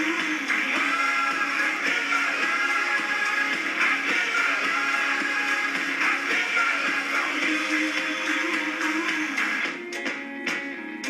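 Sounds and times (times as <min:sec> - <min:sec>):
music with singing from television: 0:00.0 - 0:11.0.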